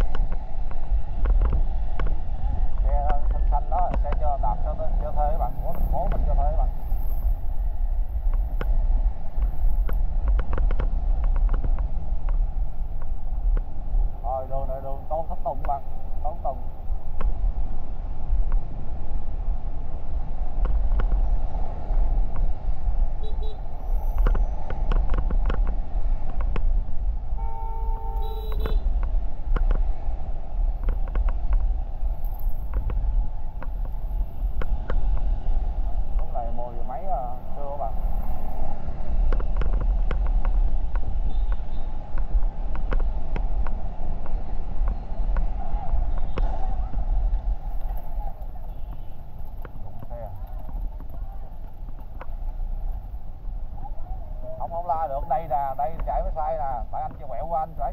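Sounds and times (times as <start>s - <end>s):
traffic noise: 0.0s - 57.9s
wind noise on microphone: 0.0s - 57.9s
vehicle horn: 23.2s - 23.7s, 27.4s - 28.9s.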